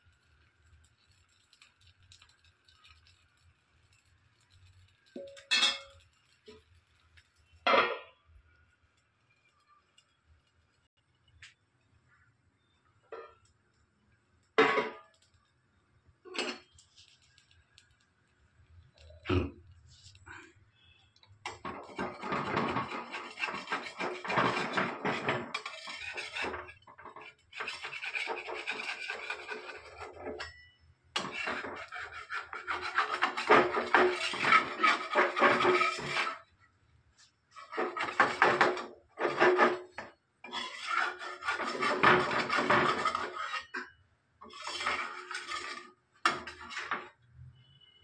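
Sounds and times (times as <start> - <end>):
spatula scraping clay griddle: 19.9 - 36.6, 37.2 - 47.2.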